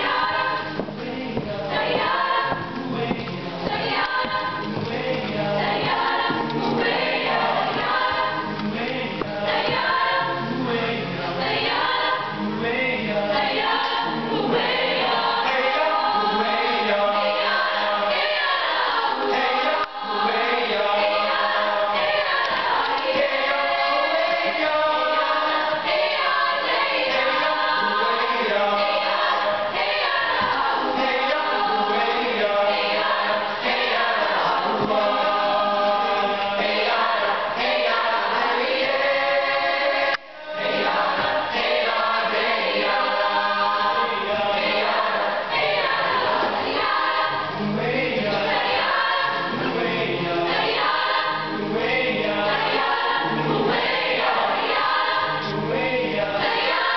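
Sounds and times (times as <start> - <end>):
choir singing a cappella: 0.0 - 56.9.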